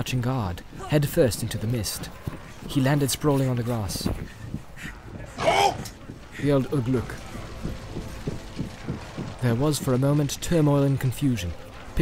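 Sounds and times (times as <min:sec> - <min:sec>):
steady low rumble: 0:00.1 - 0:12.0
rapid clicks and knocks: 0:01.2 - 0:12.0.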